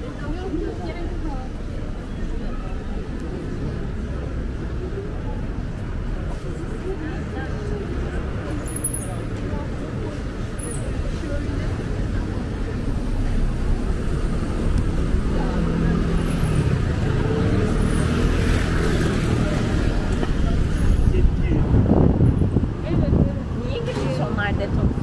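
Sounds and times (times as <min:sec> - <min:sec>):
car traffic: 0:00.0 - 0:25.0
passers-by talking: 0:00.0 - 0:25.0.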